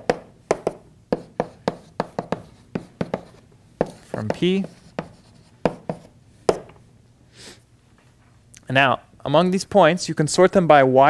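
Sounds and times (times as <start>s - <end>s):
chalk tapping and writing: 0.0s - 6.7s.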